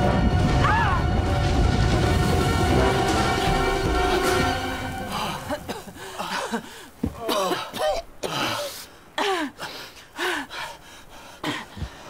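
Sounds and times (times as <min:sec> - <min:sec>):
people coughing: 0:05.1 - 0:09.5
people gasping for breath: 0:05.1 - 0:12.0.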